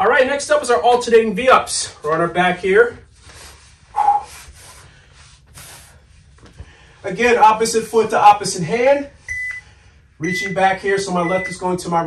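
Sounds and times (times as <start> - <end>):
rustling of person moving: 0.7 - 10.2
faint breathing: 3.0 - 7.1, 9.1 - 10.2.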